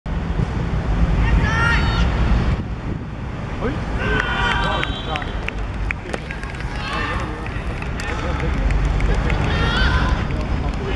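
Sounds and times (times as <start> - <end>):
wind rumble on microphone: 0.1 - 10.9
footballers shouting and cheering: 3.7 - 10.9.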